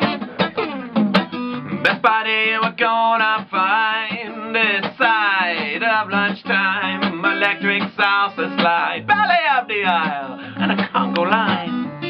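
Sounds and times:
strummed acoustic guitar: 0:00.0 - 0:12.0
man singing: 0:01.7 - 0:11.9.

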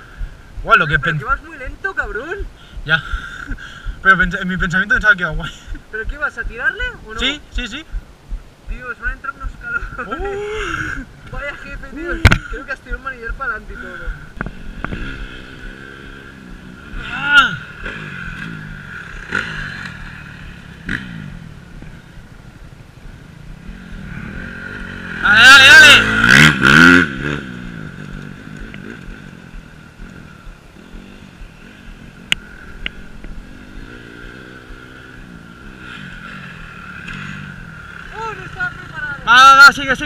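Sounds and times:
motocross bike engine revving: 0:00.0 - 0:08.0, 0:08.7 - 0:40.0
dirt bike engine idling: 0:00.0 - 0:40.0.

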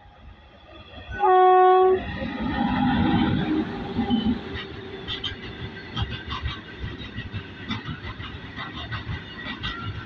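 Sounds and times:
train rumbling and clattering past: 0:00.0 - 0:10.0
locomotive horn blast: 0:01.2 - 0:02.0.

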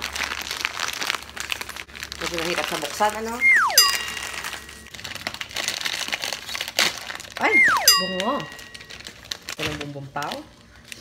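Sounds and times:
plastic wrapper crinkling: 0:00.0 - 0:11.0.

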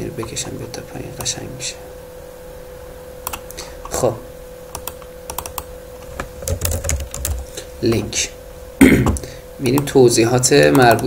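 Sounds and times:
faint steady hum: 0:00.0 - 0:11.0
computer keyboard typing: 0:03.3 - 0:03.6, 0:04.7 - 0:05.7, 0:06.4 - 0:07.5, 0:10.6 - 0:11.0.

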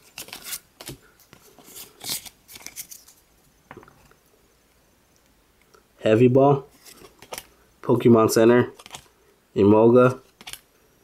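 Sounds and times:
soft card rustle: 0:00.0 - 0:03.3, 0:06.7 - 0:07.5, 0:08.6 - 0:09.1, 0:10.1 - 0:10.6.

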